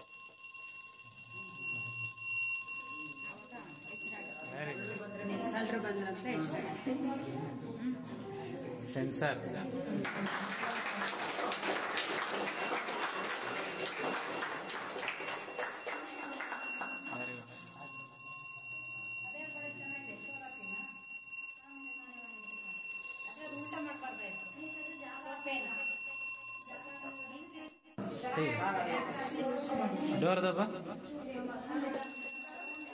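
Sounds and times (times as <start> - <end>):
electric bell ringing: 0.0 - 6.6, 11.8 - 28.0, 32.0 - 32.9.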